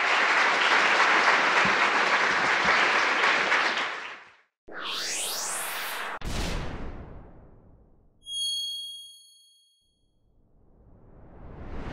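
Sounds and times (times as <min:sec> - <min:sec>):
rising whoosh: 0:04.7 - 0:06.2
bell-like chime ringing: 0:08.2 - 0:10.0.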